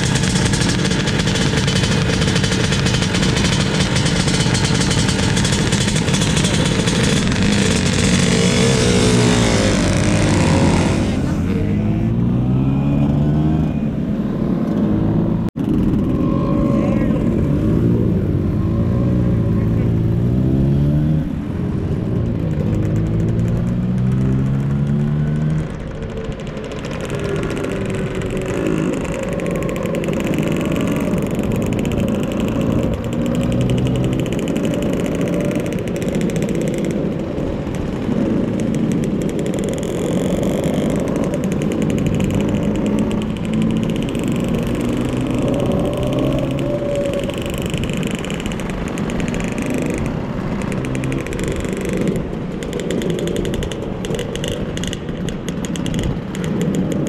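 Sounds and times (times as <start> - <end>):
motor scooter engine running: 0.0 - 11.5, 25.7 - 57.0
wind and road noise: 0.0 - 57.0.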